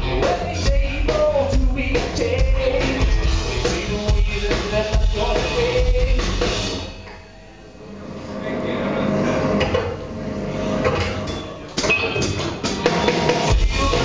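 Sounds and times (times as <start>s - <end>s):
live rock band playing: 0.0s - 7.1s, 11.9s - 14.0s
drums building up: 0.0s - 8.4s, 9.0s - 14.0s.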